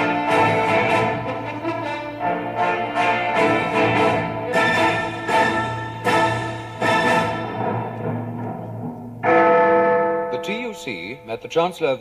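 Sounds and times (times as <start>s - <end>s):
bell chime ringing: 9.2s - 11.5s.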